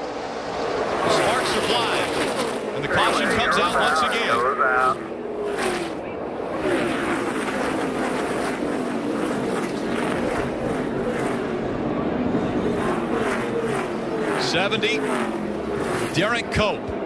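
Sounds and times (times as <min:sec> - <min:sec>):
race car engines passing: 0:00.0 - 0:17.0.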